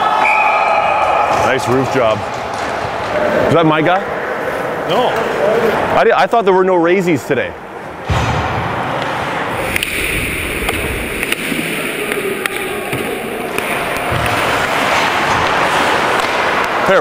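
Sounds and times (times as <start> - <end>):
hockey sticks and puck clicking: 1.7 - 3.2, 10.6 - 17.0
skates rushing on ice: 10.6 - 17.0.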